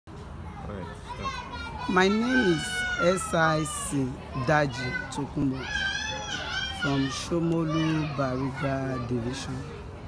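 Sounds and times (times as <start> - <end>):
children chattering: 0.1 - 10.0.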